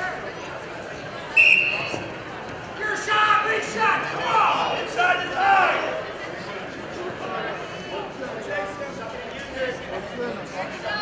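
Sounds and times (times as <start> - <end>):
referee's whistle blast: 1.4 - 2.1
people shouting in a gym: 2.8 - 6.0.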